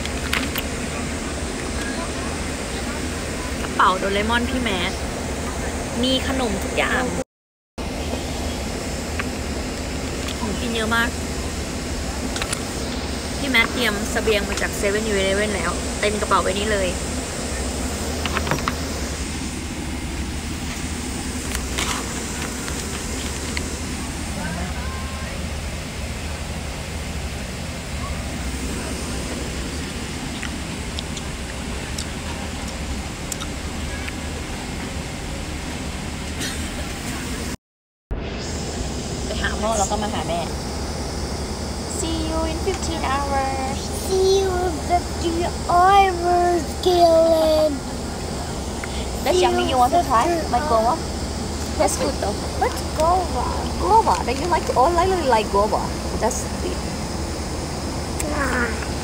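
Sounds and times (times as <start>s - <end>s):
airliner cabin air rush: 0.0s - 7.2s, 7.8s - 59.0s
low engine rumble: 0.0s - 7.2s, 7.8s - 59.0s.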